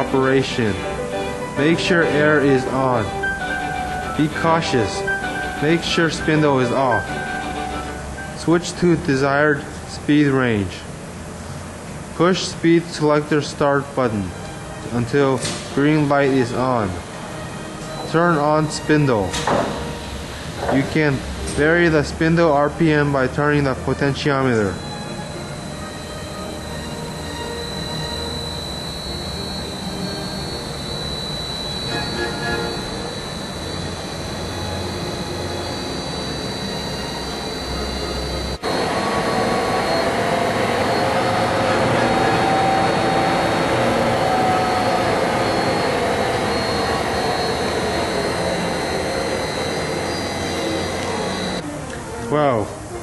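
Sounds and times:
lathe running: 0.0 - 51.6
thin high whine: 0.0 - 53.0.

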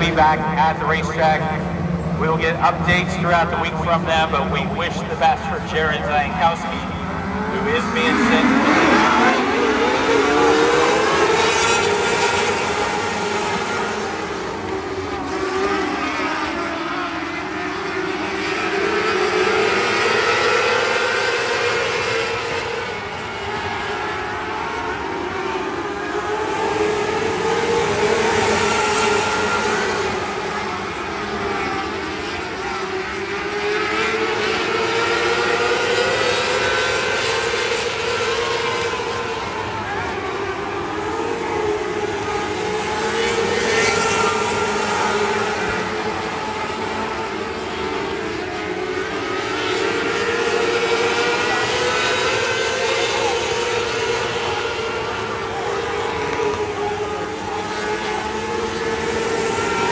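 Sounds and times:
racing car engines: 0.0 - 59.9.

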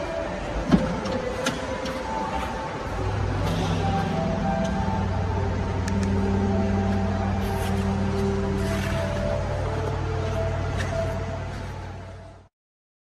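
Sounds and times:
background music with held notes: 0.0 - 12.5.

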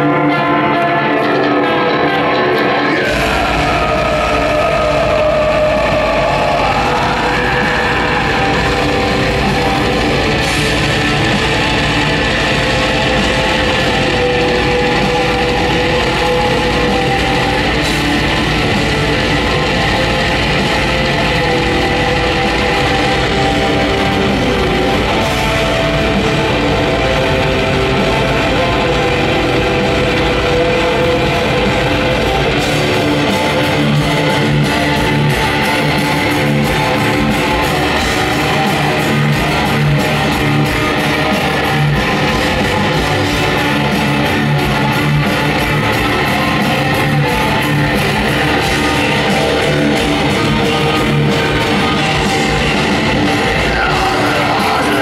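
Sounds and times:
black metal band playing live: 0.0 - 55.0
distorted guitar bending note: 0.0 - 55.0
drums: 0.0 - 55.0.

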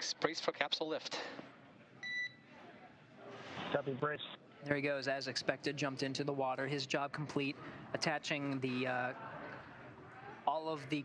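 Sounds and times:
faint radio hiss: 0.0 - 10.4.

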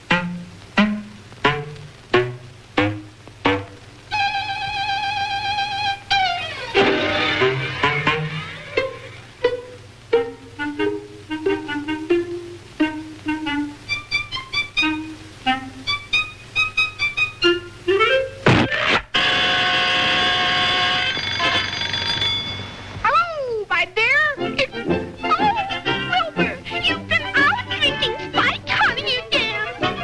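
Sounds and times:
cartoon orchestra score: 4.1 - 16.3, 24.4 - 30.0.

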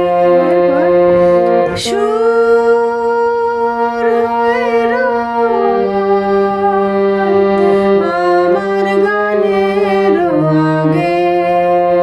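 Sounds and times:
harmonium playing held notes: 0.0 - 12.0.

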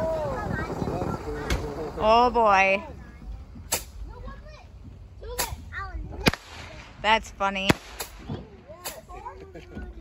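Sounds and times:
fireworks cracking: 5.4 - 9.2.

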